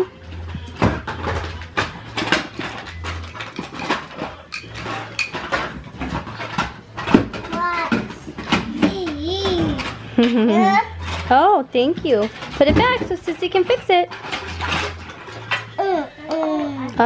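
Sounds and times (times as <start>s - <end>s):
wooden toys clacking together: 0.0s - 17.0s.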